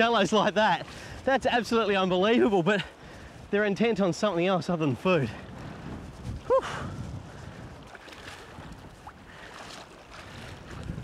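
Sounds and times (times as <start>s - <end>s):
small waves lapping: 0.0s - 11.0s
wind on microphone: 4.8s - 11.0s.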